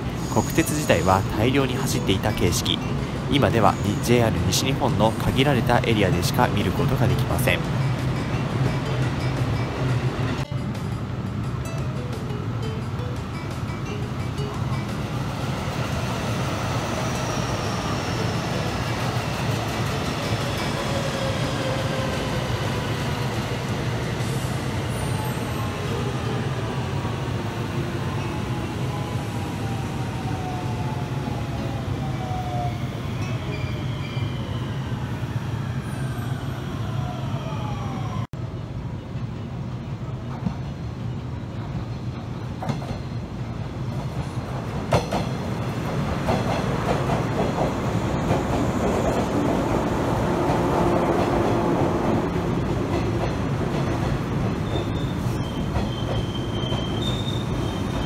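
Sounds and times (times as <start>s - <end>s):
electric train passing at speed: 0.0s - 58.0s
train rolling into platform: 0.0s - 58.0s.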